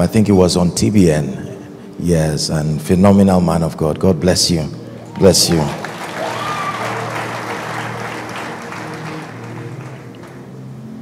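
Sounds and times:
soft music with low notes: 0:00.0 - 0:11.0
congregation applauding: 0:05.0 - 0:11.0.

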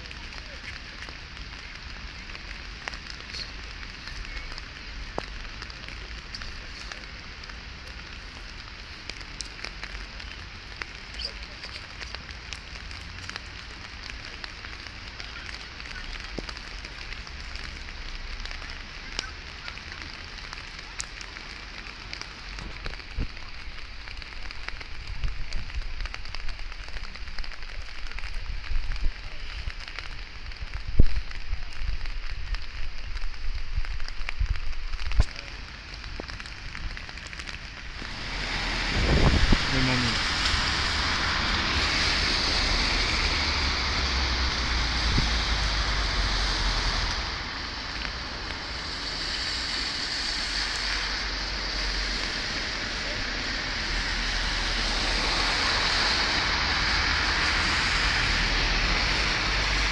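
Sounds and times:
rain hiss: 0:00.0 - 0:59.9
raindrop ticks: 0:00.0 - 0:59.9
wind rumble on microphone: 0:24.8 - 0:46.1.

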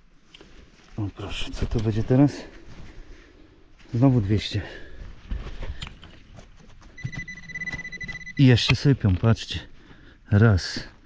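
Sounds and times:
metal detector high beep: 0:07.0 - 0:08.7.

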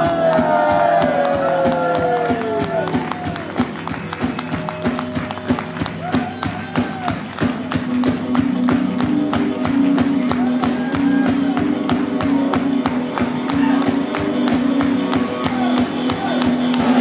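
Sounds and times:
live rock band playing: 0:00.0 - 0:17.0.

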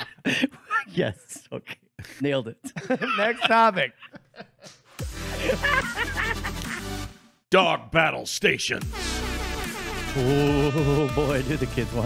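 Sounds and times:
music jingle with heavy bass: 0:08.8 - 0:12.0.

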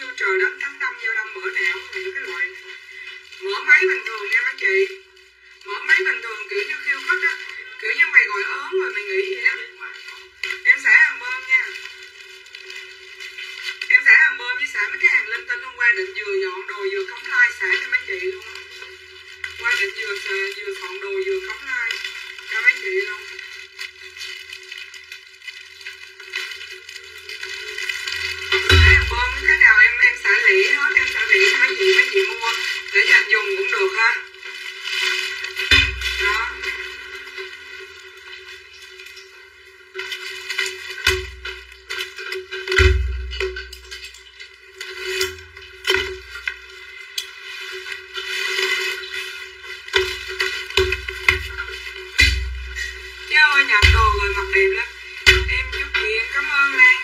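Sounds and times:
person talking: 0:00.0 - 0:05.0, 0:05.6 - 0:11.8, 0:13.9 - 0:18.8, 0:19.6 - 0:23.4, 0:28.5 - 0:34.3, 0:35.7 - 0:36.9, 0:53.3 - 0:57.0
plastic wrapping rustling: 0:00.0 - 0:57.0.

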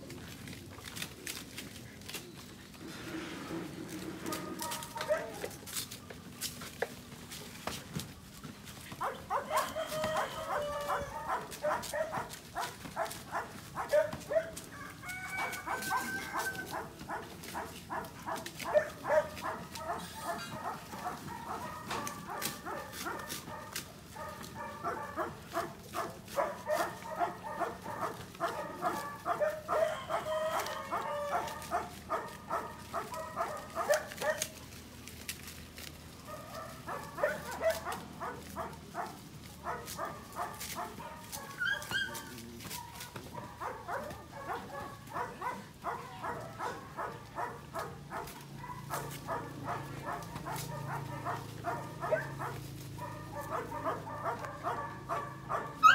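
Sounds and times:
puppies yapping and barking: 0:00.0 - 0:55.9.

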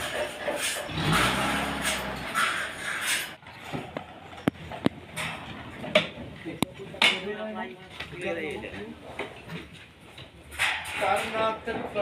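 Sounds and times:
scrapes and knocks: 0:00.0 - 0:07.2.

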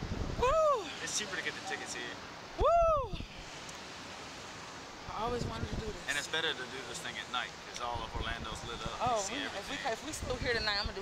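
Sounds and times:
wind rushing on microphone: 0:00.0 - 0:01.0, 0:02.5 - 0:03.6, 0:05.0 - 0:06.1, 0:07.8 - 0:11.0
rider shouting woo: 0:00.4 - 0:00.9, 0:02.6 - 0:03.2.

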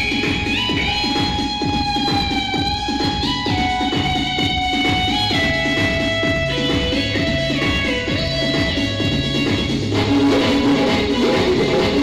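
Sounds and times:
band melody of long held notes: 0:00.0 - 0:12.0.

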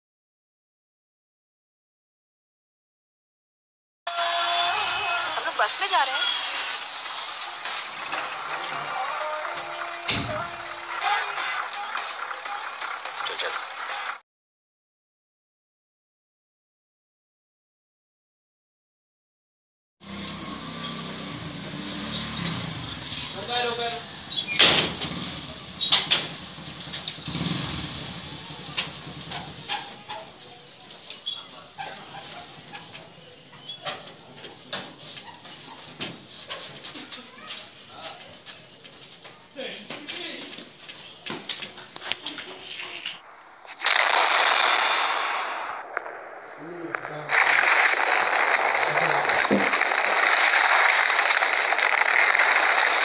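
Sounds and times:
motorcycle engine approaching: 0:20.0 - 0:30.2
loud burst of dense noise: 0:43.2 - 0:53.0.

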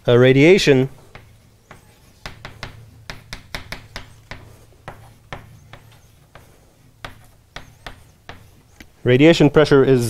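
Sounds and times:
chalk tapping on blackboard: 0:00.9 - 0:09.0.

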